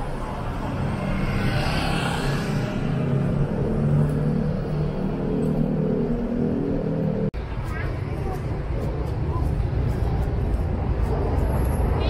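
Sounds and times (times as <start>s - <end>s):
car engines rumbling: 0.0s - 12.0s.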